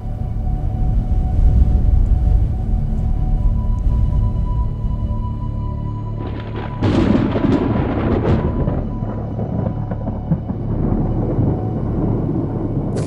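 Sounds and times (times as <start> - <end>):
thunder clap and rumble: 0.0 - 5.3, 6.2 - 13.0
dramatic music: 0.0 - 13.0.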